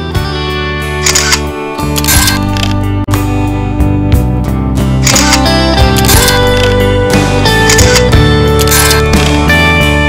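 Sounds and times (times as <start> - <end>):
background guitar music: 0.0 - 10.0
camera shutter click: 1.0 - 2.8, 5.0 - 6.8, 7.7 - 9.3.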